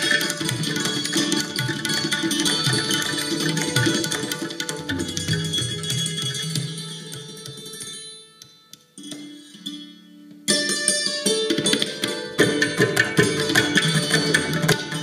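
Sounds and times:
santoor: 0.0 - 15.0
tabla and hand drums: 0.0 - 15.0.

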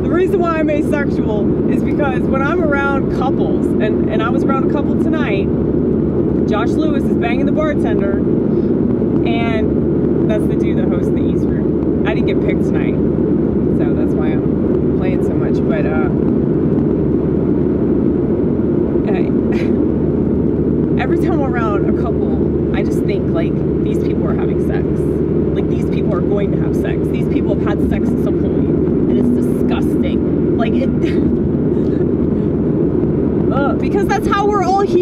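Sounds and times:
road and engine rumble in car: 0.0 - 35.0
indistinct voices: 21.0 - 35.0.

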